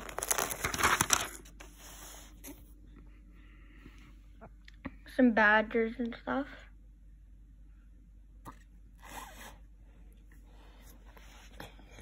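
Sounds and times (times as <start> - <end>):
paper rustle: 0.0 - 2.6.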